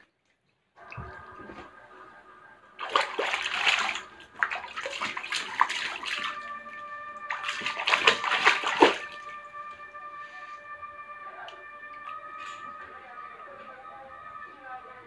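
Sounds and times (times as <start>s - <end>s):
water splashing in paddling pool: 2.8s - 10.1s.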